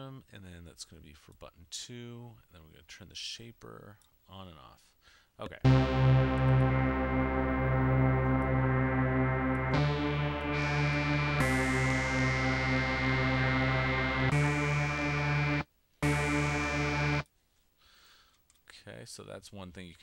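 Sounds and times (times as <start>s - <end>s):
synthesized trance lead notes: 5.7s - 17.2s.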